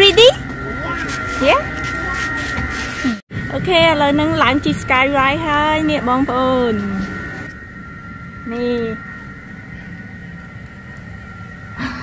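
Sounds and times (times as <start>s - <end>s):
high two-note machinery whine: 0.0s - 12.0s
low even rumble: 3.3s - 11.8s.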